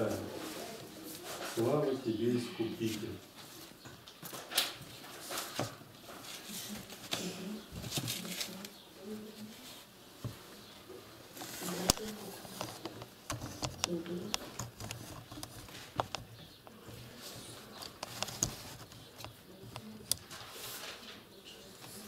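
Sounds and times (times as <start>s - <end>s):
paper rustling: 0.0s - 1.9s, 2.8s - 10.7s, 11.3s - 22.0s
faint murmuring voices: 0.0s - 4.1s, 4.9s - 22.0s
pens tapping and clicking: 11.6s - 20.4s.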